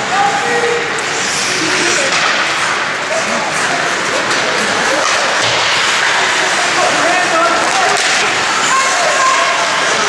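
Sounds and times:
ice hockey skating and play: 0:00.0 - 0:10.0.

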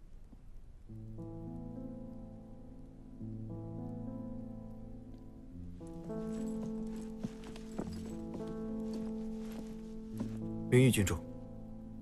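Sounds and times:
slow sustained background chords: 0:00.0 - 0:12.0
soft footsteps: 0:05.8 - 0:10.6.

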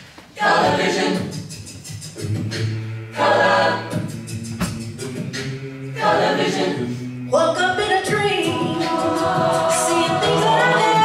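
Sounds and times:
sung backing harmonies: 0:00.0 - 0:11.0
held low bass note: 0:03.8 - 0:08.1.

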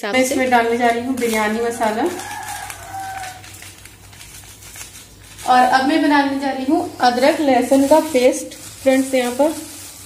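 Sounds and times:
powder rustling and crinkling: 0:00.1 - 0:10.0.

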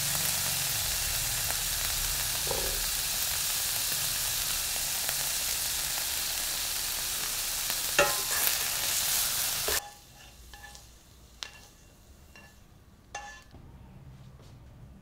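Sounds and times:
food sizzling in a frying pan: 0:00.0 - 0:13.5.

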